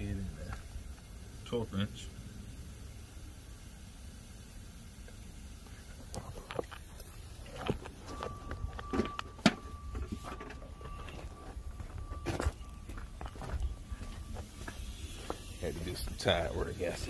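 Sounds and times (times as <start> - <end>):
faint steady high tone: 7.0 - 17.0.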